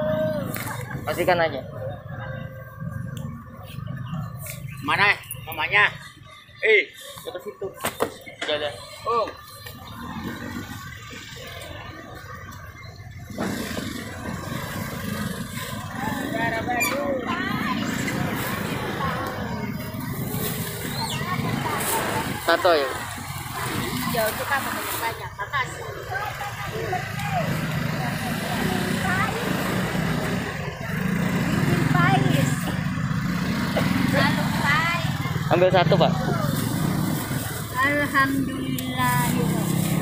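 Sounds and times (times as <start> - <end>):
distant voices: 0.0 - 40.0
market background noise: 0.0 - 40.0
vehicle engine running: 8.5 - 40.0.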